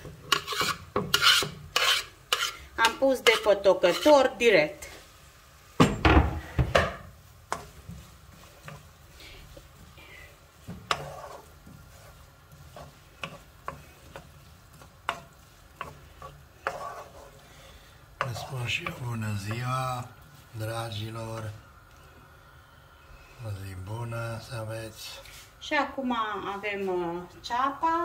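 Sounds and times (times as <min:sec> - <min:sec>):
spatula tapping pan: 0:00.0 - 0:04.2, 0:05.8 - 0:09.9, 0:10.5 - 0:17.4, 0:18.2 - 0:20.3
spatula scraping frying pan: 0:00.0 - 0:05.0, 0:06.2 - 0:21.6
faint oil sizzle: 0:00.0 - 0:28.0.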